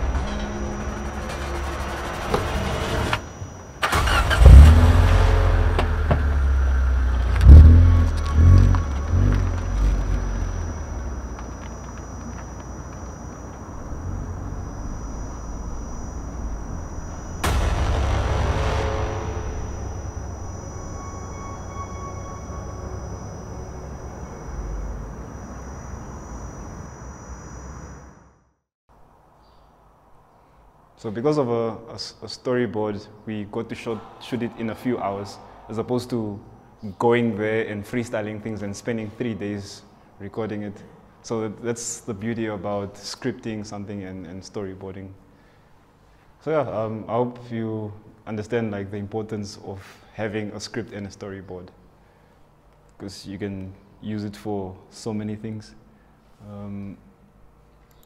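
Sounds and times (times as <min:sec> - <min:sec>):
car engine revving: 0:03.8 - 0:21.1.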